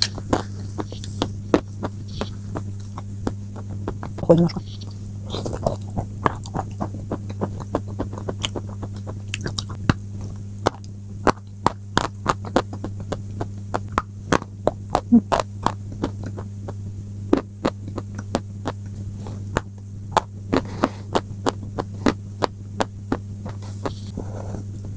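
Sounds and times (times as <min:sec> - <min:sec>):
crunching and chewing: 0:00.0 - 0:24.8
low electrical hum: 0:00.0 - 0:24.9.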